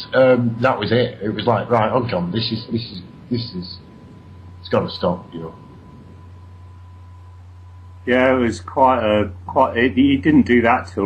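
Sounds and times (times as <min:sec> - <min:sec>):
faint hiss: 0:00.0 - 0:11.0
low electrical hum: 0:00.0 - 0:11.0
thin steady tone: 0:00.0 - 0:11.0.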